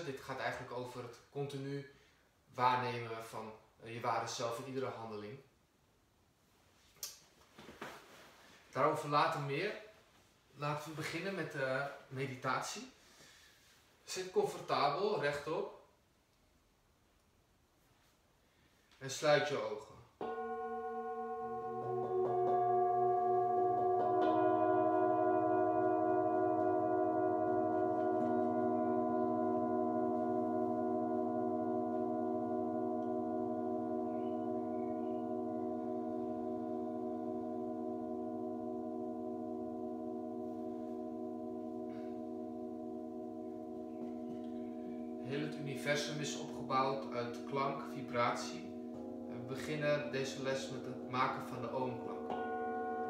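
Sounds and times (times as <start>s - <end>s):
metal singing bowls ringing: 20.2s - 53.0s.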